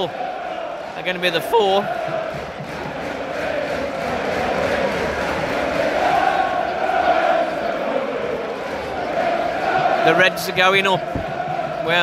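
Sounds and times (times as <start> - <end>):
crowd chanting: 0.0 - 12.0.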